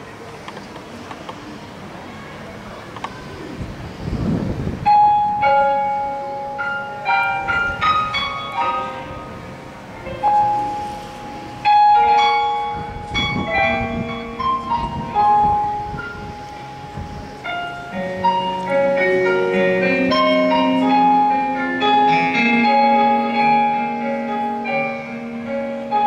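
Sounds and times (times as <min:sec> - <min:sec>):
piano notes and chords: 0:03.4 - 0:26.0.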